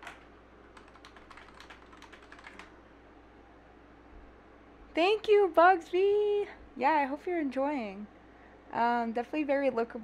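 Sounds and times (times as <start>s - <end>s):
computer keyboard typing: 0.0s - 2.8s.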